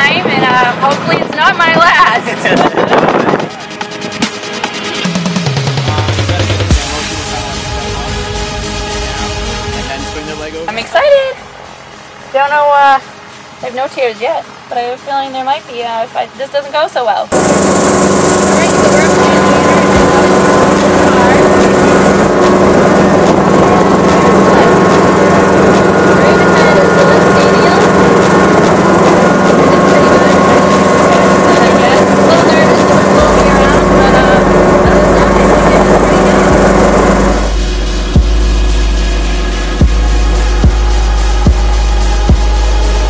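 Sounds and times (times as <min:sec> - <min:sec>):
muffled talk: 0:00.0 - 0:04.0, 0:05.8 - 0:11.5, 0:18.3 - 0:37.5
music with thumping beat: 0:00.9 - 0:09.0, 0:17.3 - 0:43.0
helicopter engine and rotor drone: 0:17.3 - 0:40.6.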